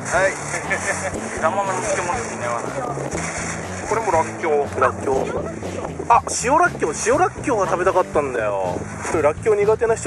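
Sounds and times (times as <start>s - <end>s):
voices talking: 0.0s - 9.7s.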